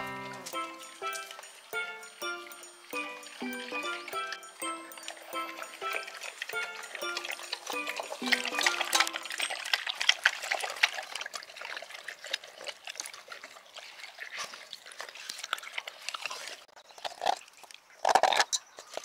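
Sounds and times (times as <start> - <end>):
dog lapping water from metal bowl: 0.7 - 17.4.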